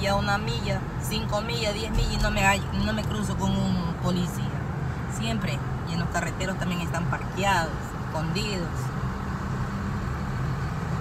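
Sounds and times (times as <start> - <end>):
car engine hum: 0.0 - 11.0
road noise inside car: 0.0 - 11.0.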